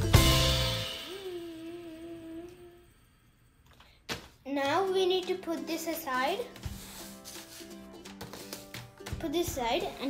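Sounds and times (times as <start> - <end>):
person humming a note: 1.0 - 3.0.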